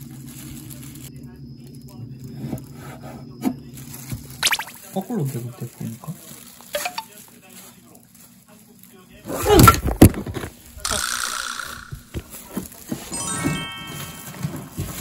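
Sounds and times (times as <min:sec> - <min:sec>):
pitch-bending sound effect: 0:04.4 - 0:04.8
chime-like tones: 0:13.1 - 0:14.8.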